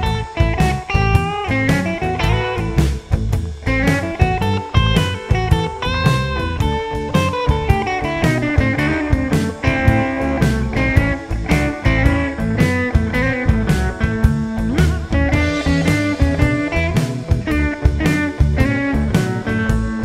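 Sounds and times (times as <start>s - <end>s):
blues backing track: 0.0s - 20.0s
electric guitar blues lead: 0.0s - 20.0s.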